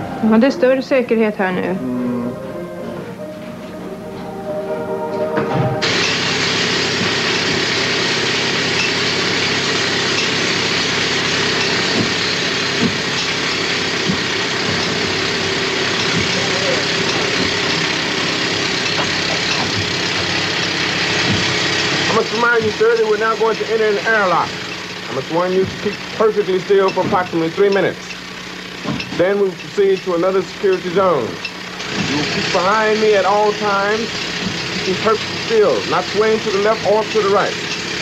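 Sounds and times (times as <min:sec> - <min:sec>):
man talking: 0:22.1 - 0:28.0, 0:34.8 - 0:37.6.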